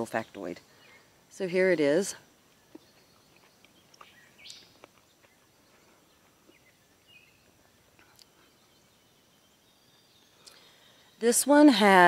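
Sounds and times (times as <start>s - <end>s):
faint soft chewing clicks: 2.7s - 5.4s.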